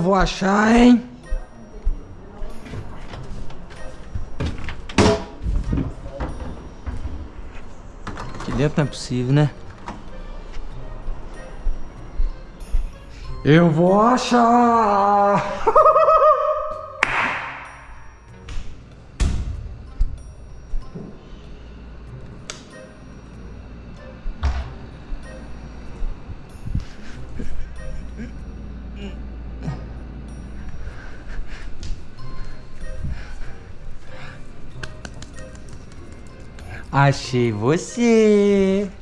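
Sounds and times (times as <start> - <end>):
footsteps on tiled stairs: 0.0 - 7.8, 9.7 - 13.1, 17.9 - 21.3.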